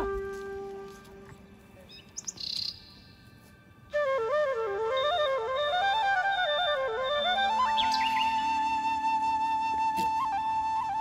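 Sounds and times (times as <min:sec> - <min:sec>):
flute-like music note: 0:00.0 - 0:01.4, 0:03.8 - 0:11.0
bird chirping: 0:01.8 - 0:03.4, 0:07.2 - 0:08.6.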